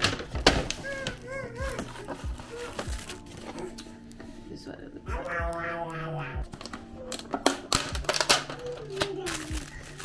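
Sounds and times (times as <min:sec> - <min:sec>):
paper bag crinkling: 0:00.0 - 0:04.2, 0:06.5 - 0:10.0.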